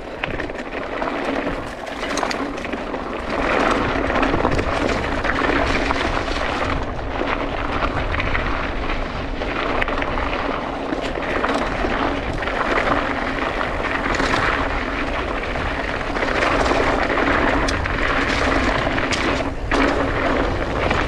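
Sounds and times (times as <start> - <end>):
bike rattles and clicks: 0.0 - 21.0
tyres crunching over gravel: 0.0 - 21.0
wind rush on microphone: 0.0 - 21.0.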